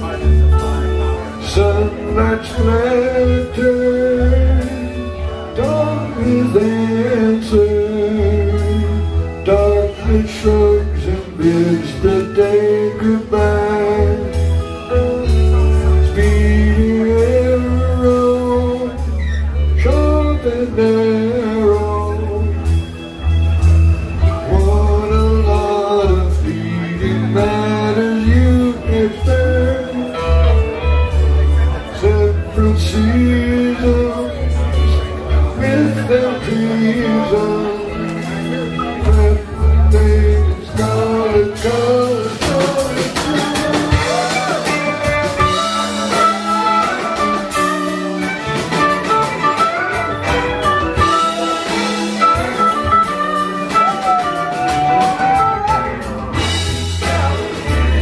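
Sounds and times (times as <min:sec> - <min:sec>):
man singing lead vocal: 0:00.0 - 0:23.2, 0:24.2 - 0:48.7, 0:49.5 - 0:58.0
electric bass: 0:00.0 - 0:58.0
electric guitars: 0:00.0 - 0:58.0
live rock band playing: 0:00.0 - 0:58.0.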